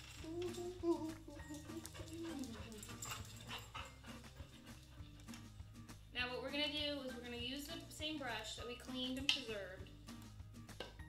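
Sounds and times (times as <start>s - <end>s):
dog whimpering: 0.2s - 4.2s.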